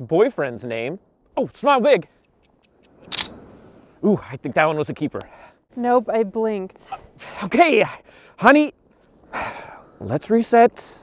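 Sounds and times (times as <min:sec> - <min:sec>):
camera shutter firing: 0:03.0 - 0:03.4.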